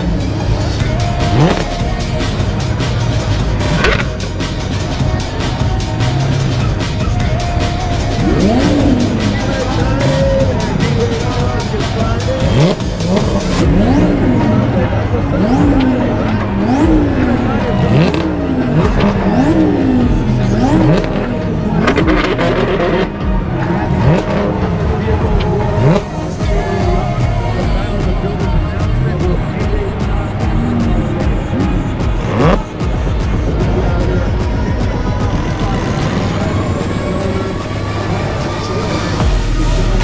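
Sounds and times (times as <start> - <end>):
background music: 0.0 - 40.0
car engine revving: 0.0 - 40.0
crowd noise: 0.0 - 40.0.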